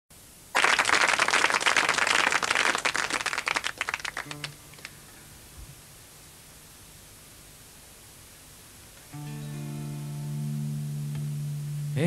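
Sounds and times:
audience applause: 0.5 - 4.9.

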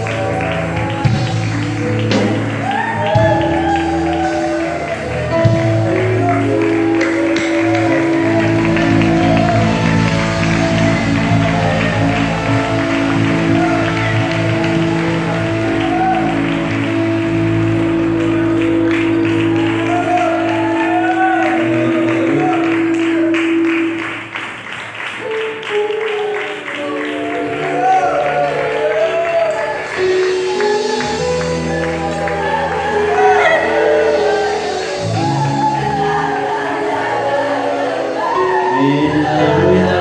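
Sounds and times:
held organ-like chords: 4.8 - 24.1
voices singing: 31.6 - 40.0.

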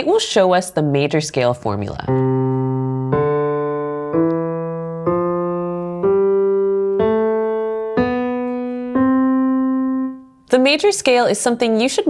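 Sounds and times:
piano scale on keyboard: 1.8 - 10.7.

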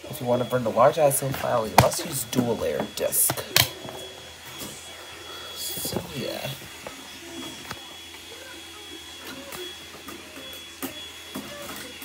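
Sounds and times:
disc drive mechanical whir: 0.0 - 12.0.

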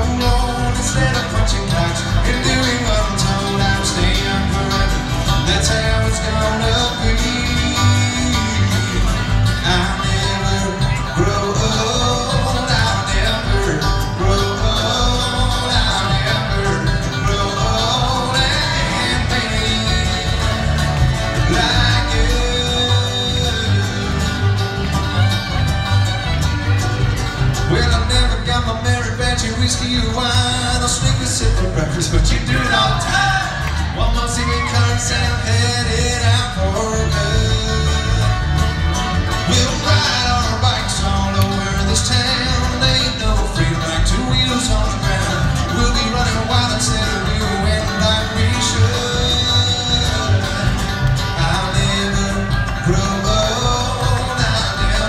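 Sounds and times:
acoustic guitar: 0.0 - 55.0
banjo: 0.0 - 55.0
bluegrass band playing: 0.0 - 55.0
fiddle: 0.0 - 55.0
mandolin: 0.0 - 55.0
upright bass notes: 0.0 - 55.0.

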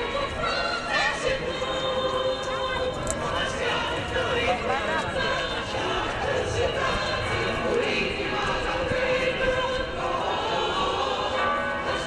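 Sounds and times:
church bells ringing: 0.0 - 12.0.

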